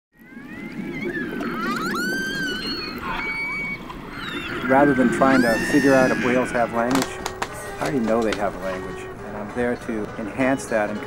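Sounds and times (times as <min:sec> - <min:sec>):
orca whistles and calls: 0:00.2 - 0:07.9.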